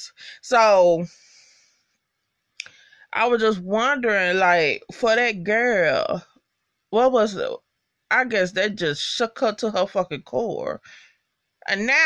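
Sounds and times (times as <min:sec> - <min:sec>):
soft breath out: 0:01.1 - 0:01.9.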